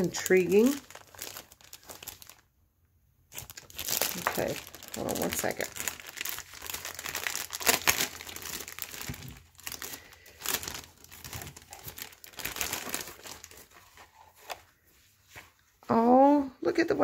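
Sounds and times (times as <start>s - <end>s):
cellophane crinkling: 0.0s - 2.5s, 3.3s - 15.5s.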